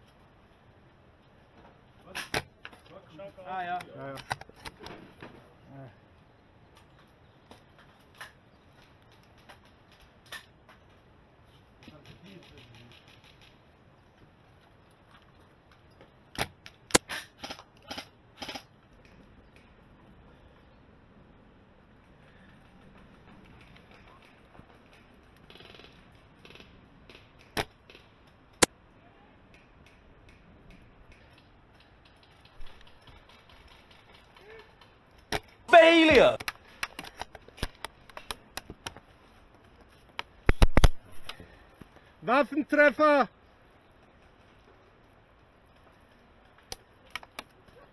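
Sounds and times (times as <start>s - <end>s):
sharp clicks: 40.2s - 41.4s.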